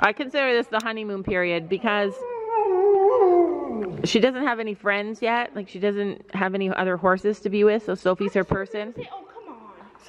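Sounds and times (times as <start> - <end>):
dog howling: 2.1 - 4.0.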